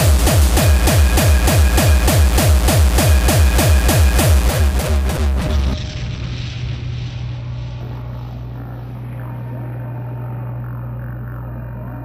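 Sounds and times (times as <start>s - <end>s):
low synth drone: 0.0s - 12.0s.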